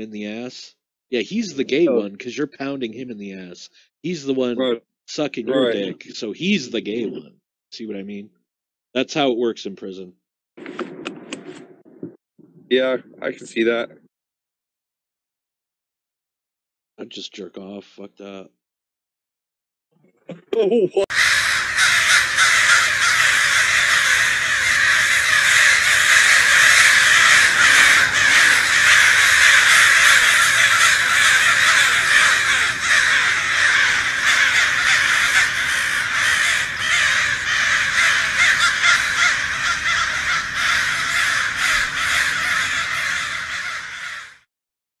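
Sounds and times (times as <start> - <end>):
flock of birds calling harshly: 21.1 - 44.5.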